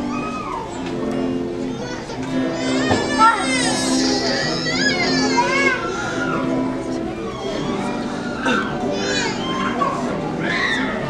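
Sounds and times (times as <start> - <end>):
children's voices chattering: 0.0 - 11.0
child calling out: 1.6 - 6.6.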